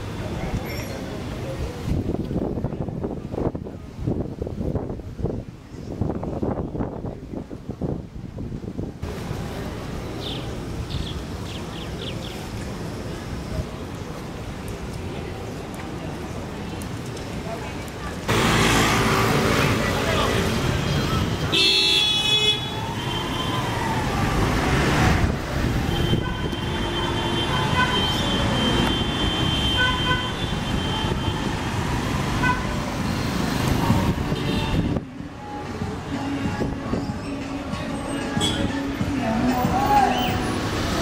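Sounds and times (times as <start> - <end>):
people talking: 0.0 - 3.3, 13.3 - 21.7
traffic: 0.0 - 41.0
vehicle horn: 21.5 - 23.6, 25.8 - 31.4, 32.4 - 32.8, 38.3 - 38.8.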